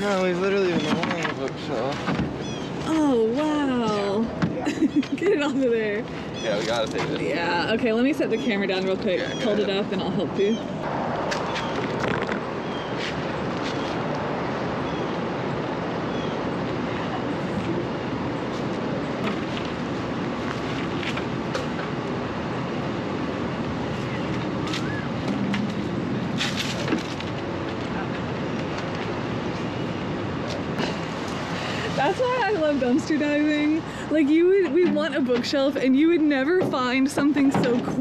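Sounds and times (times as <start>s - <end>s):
outdoor background noise: 0.0s - 38.0s.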